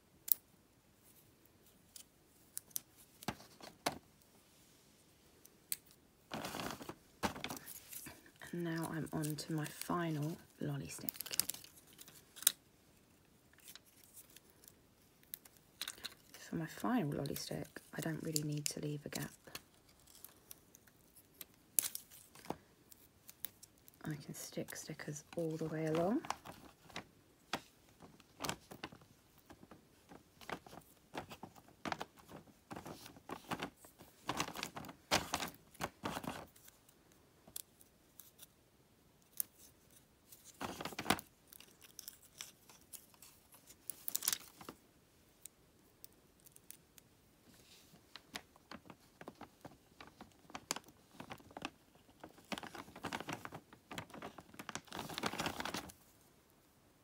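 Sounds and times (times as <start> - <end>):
small clicks and rustles: 0.2 - 4.4, 5.3 - 38.6, 39.2 - 56.3.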